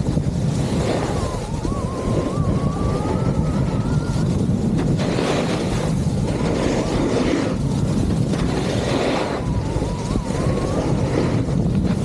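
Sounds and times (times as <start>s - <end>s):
skis scraping on snow: 0.0s - 2.3s, 2.9s - 12.0s
wind on microphone: 0.0s - 12.0s.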